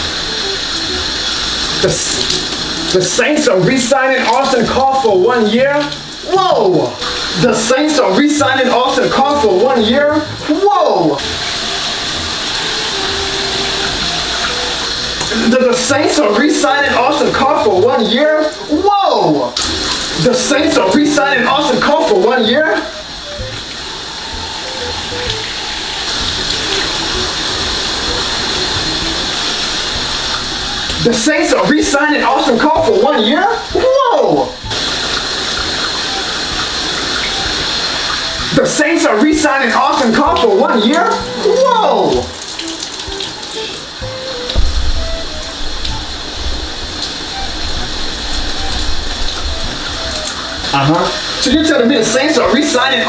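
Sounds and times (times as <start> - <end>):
faint melody: 0.0 - 53.0
shower spraying on tiled floor: 0.0 - 53.0.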